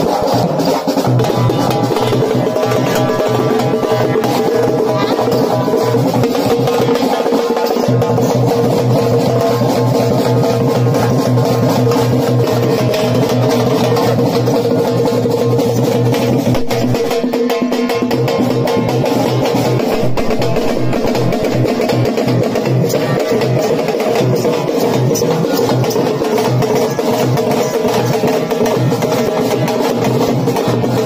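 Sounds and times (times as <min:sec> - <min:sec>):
fast stick-beaten drumming: 0:00.0 - 0:31.0.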